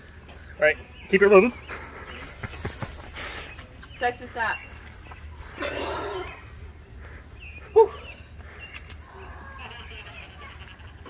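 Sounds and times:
hose water splashing: 1.8s - 5.0s.

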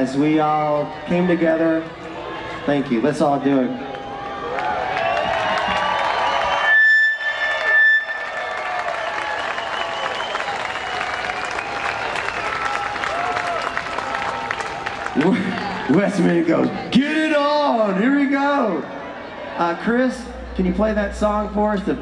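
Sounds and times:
crowd cheering and applauding: 0.2s - 20.1s
piercing whistle: 5.0s - 12.9s.

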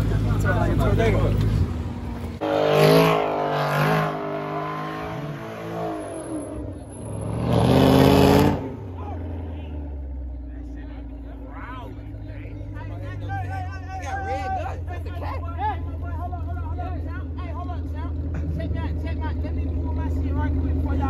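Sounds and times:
car engine revving hard: 2.4s - 9.6s.

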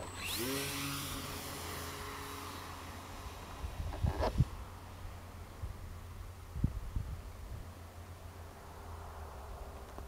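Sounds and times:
electric motor and propeller whine: 0.0s - 7.0s.

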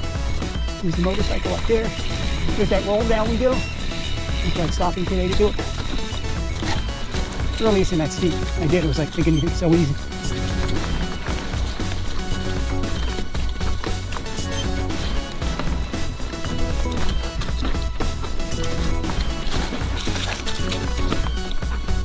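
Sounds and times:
music with steady beat: 0.0s - 22.0s
bike rattling on rocky trail: 15.4s - 22.0s.

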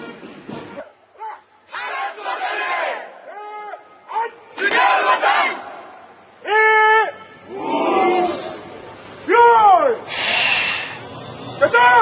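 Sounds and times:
group shouting in unison: 1.7s - 5.8s, 7.4s - 8.7s.

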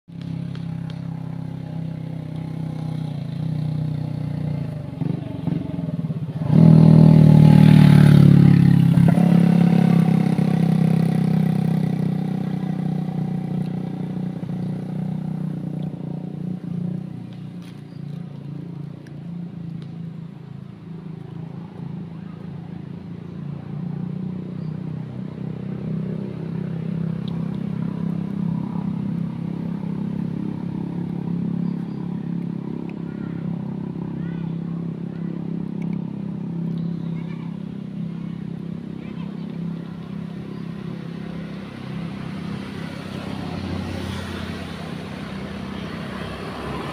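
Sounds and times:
loud vehicle passing: 0.1s - 46.9s
vehicle engine running: 0.1s - 46.9s.

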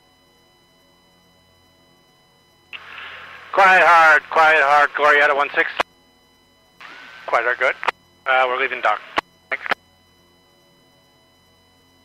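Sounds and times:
faint radio hum with electronic tones: 0.0s - 12.0s
radio click: 2.8s - 3.6s, 6.8s - 8.0s, 8.6s - 9.8s.

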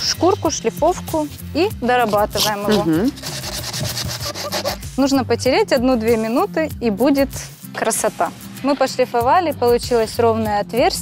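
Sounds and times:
quiet background music: 0.0s - 11.0s
sandpaper rubbing plastic pipe: 2.0s - 5.0s.

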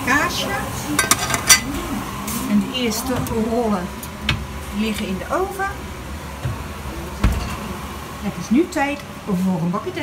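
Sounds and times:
oven humming: 0.0s - 10.0s.

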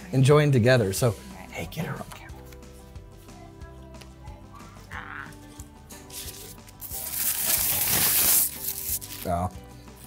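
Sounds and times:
paper napkin rustling: 6.1s - 9.4s.

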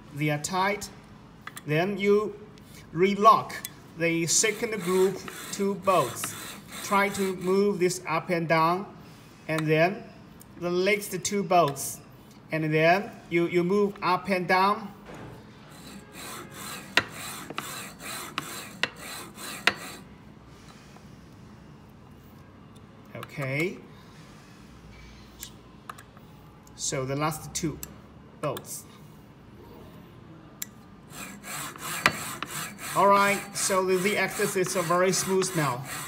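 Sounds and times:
carriage rasping along rails: 4.3s - 7.6s, 15.7s - 20.0s, 31.1s - 36.0s.

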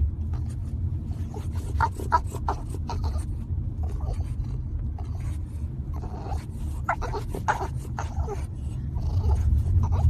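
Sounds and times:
car rumbling: 0.0s - 10.0s
puppy vocalizing softly: 0.3s - 10.0s.

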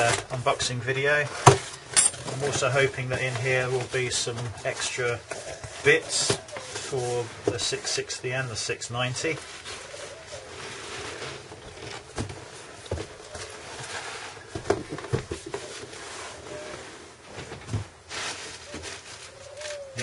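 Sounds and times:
cardboard and packing peanuts rustling: 0.0s - 7.8s, 8.5s - 20.0s
box handling knocks and clicks: 14.5s - 15.7s.

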